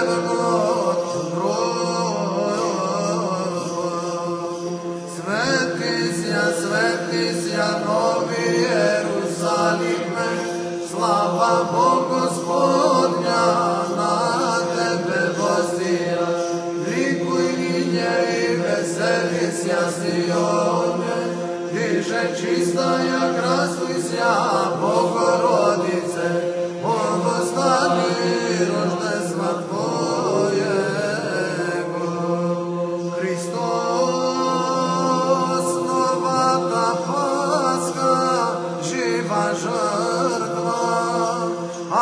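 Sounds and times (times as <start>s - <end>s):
held vocal drone: 0.0s - 42.0s
man chanting ornamented melody: 0.0s - 42.0s.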